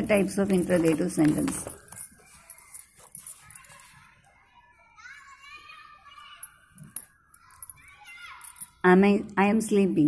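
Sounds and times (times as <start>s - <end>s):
faint high-pitched voice: 2.0s - 8.8s.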